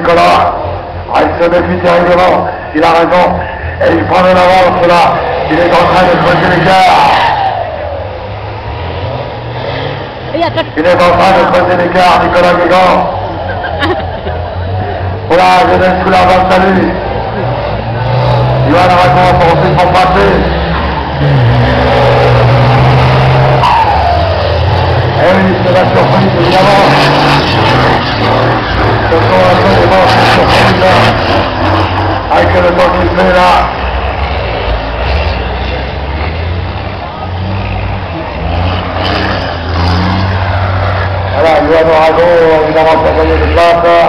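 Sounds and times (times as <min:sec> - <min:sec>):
diesel truck engine passing: 0:00.0 - 0:44.0.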